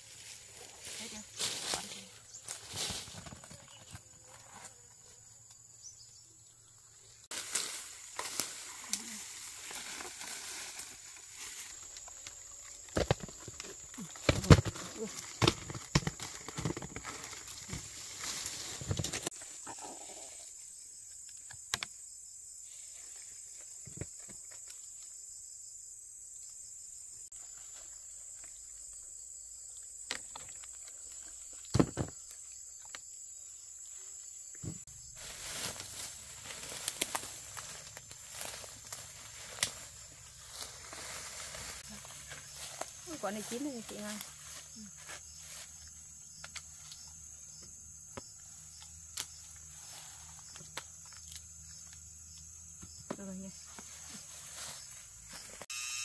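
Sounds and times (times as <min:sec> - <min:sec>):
high-pitched insect drone: 0:34.9 - 0:56.0.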